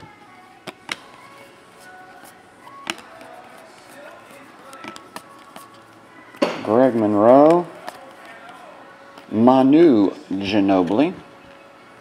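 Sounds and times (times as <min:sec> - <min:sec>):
cards snapping while flipped: 0:00.6 - 0:01.2, 0:02.8 - 0:05.8.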